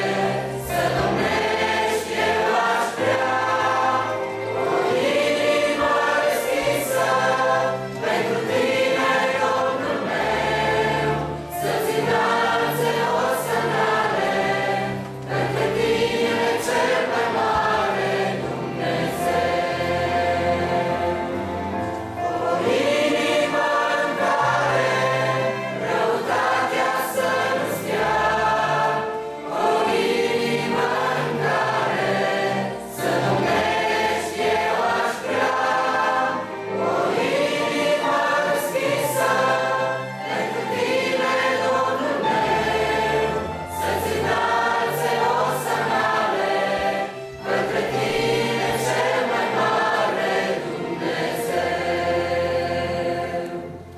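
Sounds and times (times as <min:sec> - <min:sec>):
mixed choir singing a hymn: 0:00.0 - 0:53.9.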